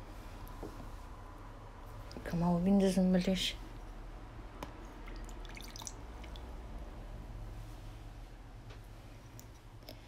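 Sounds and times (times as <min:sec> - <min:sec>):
water drips and splashes: 0:05.0 - 0:06.6
water trickling into a bowl: 0:05.1 - 0:06.6.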